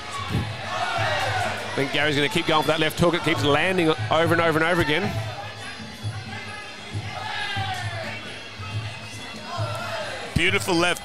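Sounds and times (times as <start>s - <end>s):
crowd in a hall: 0.0s - 11.0s.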